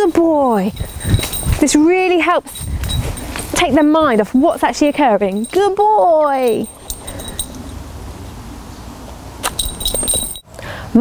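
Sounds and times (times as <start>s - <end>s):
wind rumble on microphone: 0.0s - 5.6s
metallic clinks of dog collar: 0.4s - 7.8s, 9.4s - 10.5s.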